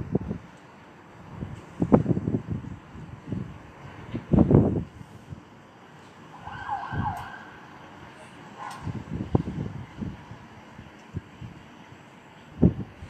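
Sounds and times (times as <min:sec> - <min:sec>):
distant siren wavering: 0:06.2 - 0:10.6.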